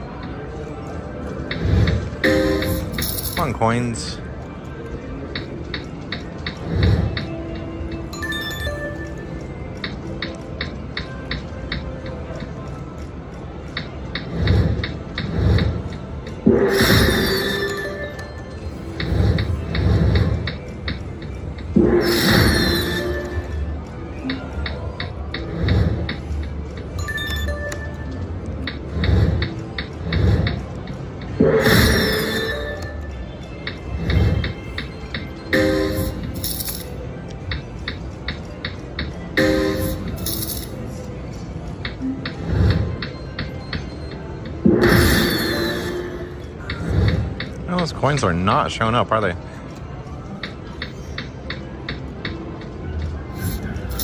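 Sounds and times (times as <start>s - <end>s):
electronic slot machine music: 0.0s - 4.4s, 5.2s - 49.3s, 50.8s - 54.0s.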